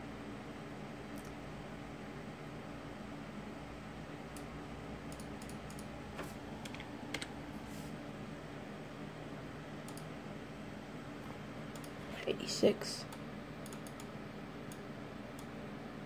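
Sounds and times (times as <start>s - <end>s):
steady low hum: 0.0s - 16.0s
computer keyboard tapping: 6.6s - 7.4s.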